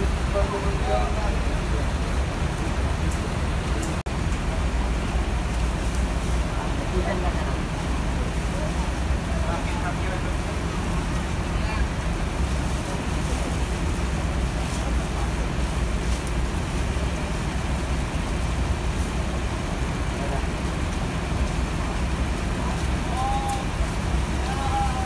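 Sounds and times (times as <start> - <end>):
steady rain hiss: 0.0 - 25.0.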